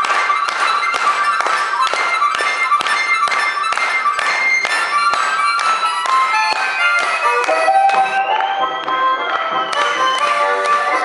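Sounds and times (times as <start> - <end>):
harmonica lead line: 0.0 - 11.0.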